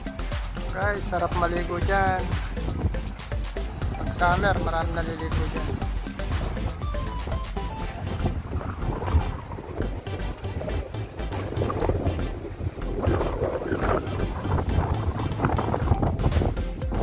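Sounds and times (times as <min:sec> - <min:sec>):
wind buffeting microphone: 0:00.6 - 0:17.0.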